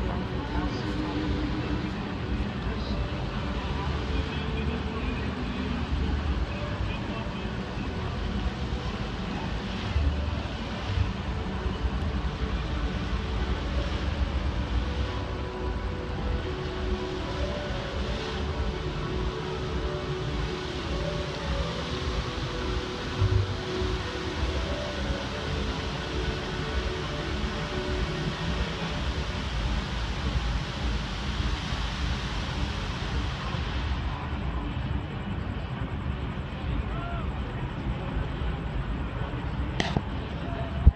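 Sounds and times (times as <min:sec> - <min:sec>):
fountain water jets hissing: 0:00.0 - 0:40.9
heavy uneven low rumble: 0:00.0 - 0:40.9
music over loudspeakers: 0:00.0 - 0:40.9.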